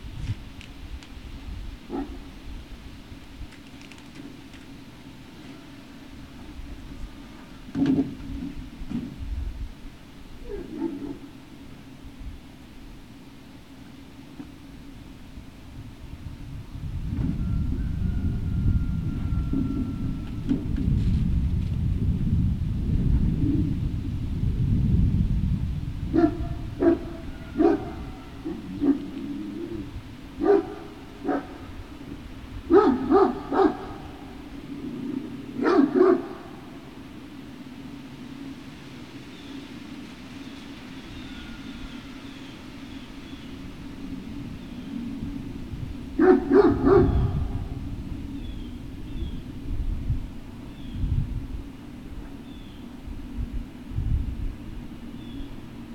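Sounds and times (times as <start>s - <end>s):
large dogs barking: 1.8s - 2.4s, 10.4s - 11.6s, 26.1s - 37.0s, 46.0s - 48.0s
low rumble: 15.4s - 35.7s, 43.0s - 55.6s.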